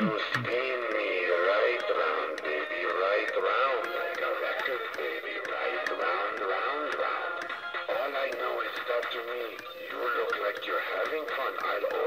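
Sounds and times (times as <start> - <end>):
ticking beat: 0.0 - 12.0
tinny electronic toy song: 0.0 - 12.0.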